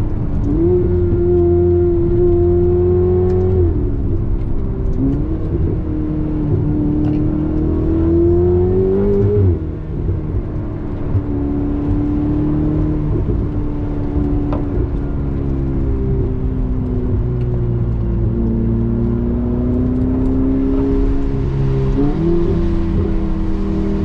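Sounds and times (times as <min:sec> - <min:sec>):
car engine heard from cabin: 0:00.0 - 0:24.0.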